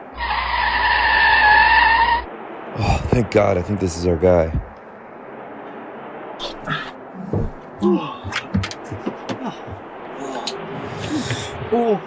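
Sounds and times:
car tyres squealing: 0:00.0 - 0:02.3
low engine rumble: 0:00.0 - 0:12.0.

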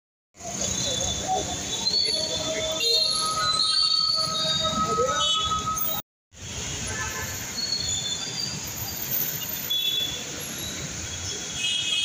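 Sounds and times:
traffic roar: 0:00.4 - 0:12.0
high squealing tones: 0:00.9 - 0:06.0.

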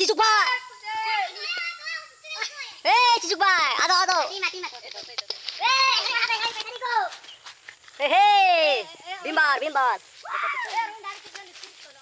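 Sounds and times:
young voices shouting calls: 0:00.0 - 0:04.6, 0:08.0 - 0:11.3.

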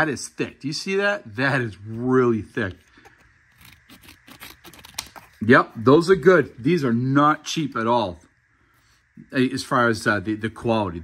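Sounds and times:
shears snipping material: 0:03.6 - 0:05.4.

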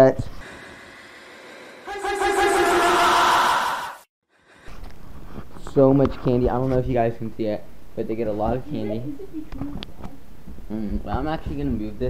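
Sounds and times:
person screaming: 0:01.9 - 0:04.0.

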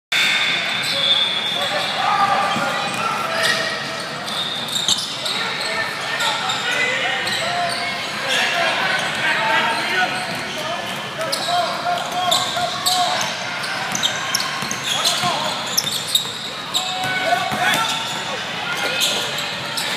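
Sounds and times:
voices calling out: 0:00.3 - 0:19.9
sneakers squeaking on court: 0:00.7 - 0:19.9.

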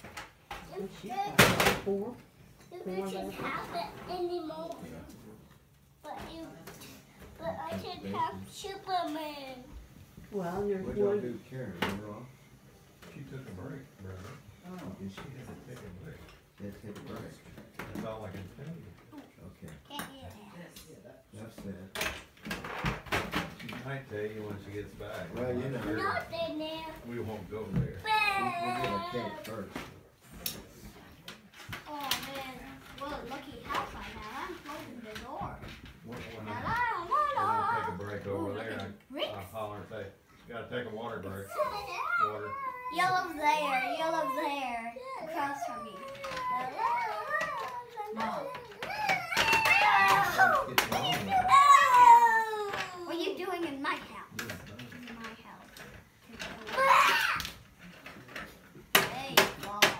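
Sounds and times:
child's voice: 0:02.7 - 0:04.9, 0:06.0 - 0:09.8, 0:19.9 - 0:20.6, 0:28.0 - 0:29.5, 0:31.9 - 0:35.6, 0:36.5 - 0:38.0, 0:41.5 - 0:54.3, 0:56.3 - 0:57.5
toys knocking: 0:58.9 - 0:59.9.

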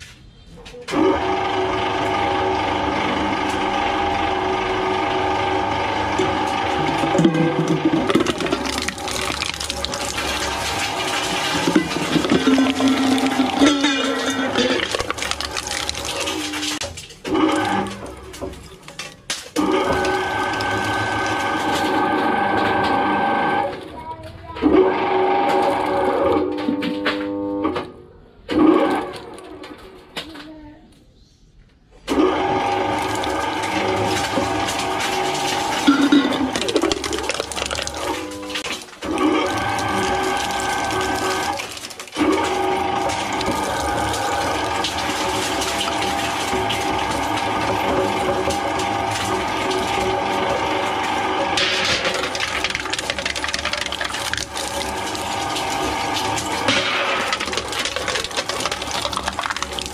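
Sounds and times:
metal shredder whining: 0:00.9 - 0:27.6, 0:32.1 - 0:59.9
grinding rattle: 0:05.6 - 0:23.2, 0:32.6 - 0:59.9.

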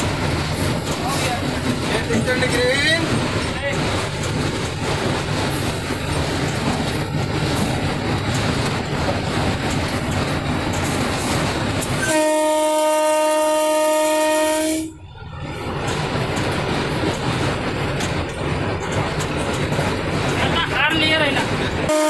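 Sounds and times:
wheels clattering on rails: 0:00.0 - 0:12.6, 0:15.2 - 0:21.9
locomotive running rumble: 0:00.0 - 0:22.0
locomotive horn blast: 0:12.0 - 0:15.0.

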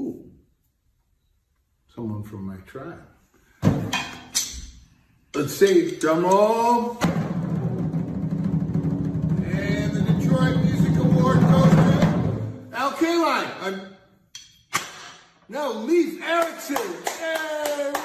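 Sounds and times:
drum roll: 0:06.9 - 0:12.7
man's voice: 0:09.4 - 0:13.9.

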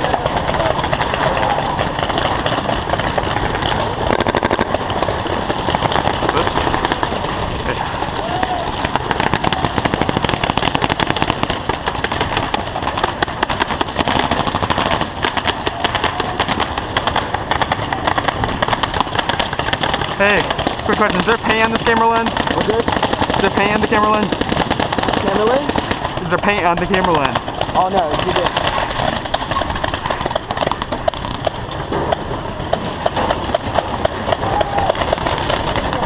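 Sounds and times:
players' voices: 0:00.0 - 0:31.0
paintball markers firing: 0:00.0 - 0:36.0.

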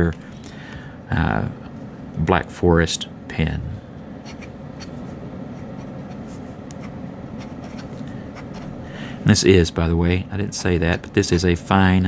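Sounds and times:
air conditioner hum: 0:00.0 - 0:12.0
fountain pen writing on paper: 0:06.8 - 0:08.7.

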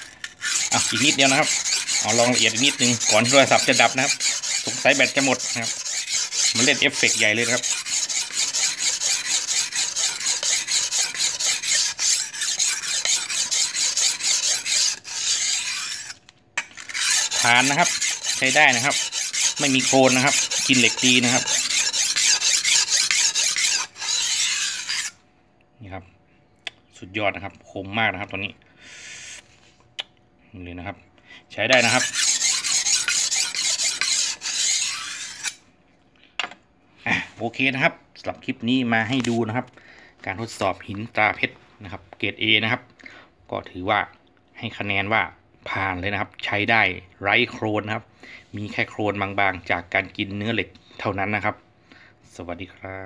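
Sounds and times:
knife scraping on whetstone: 0:00.0 - 0:16.2, 0:16.8 - 0:25.2, 0:31.7 - 0:35.6.

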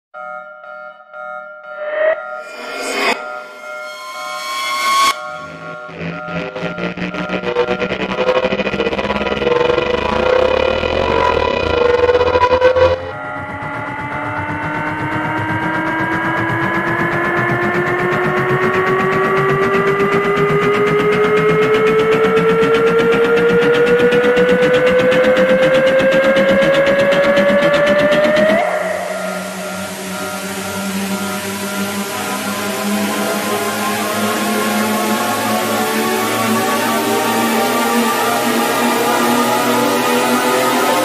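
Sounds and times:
pitched tone with noise: 0:01.7 - 0:41.0
synthesized rising tone: 0:01.7 - 0:41.0.

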